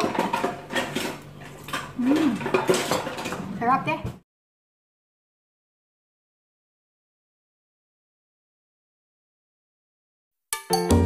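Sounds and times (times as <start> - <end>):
tableware clinking: 0.0 - 3.5.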